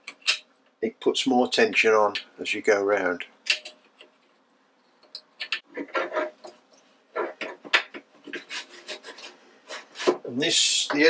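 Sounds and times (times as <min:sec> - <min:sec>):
metal parts scraping and rubbing: 0:03.5 - 0:10.2.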